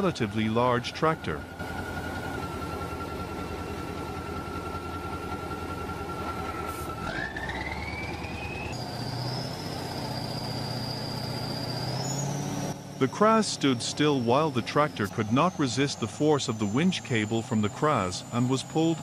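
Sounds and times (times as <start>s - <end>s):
truck engine rumbling: 0.0s - 19.0s
winch high whine: 0.0s - 19.0s.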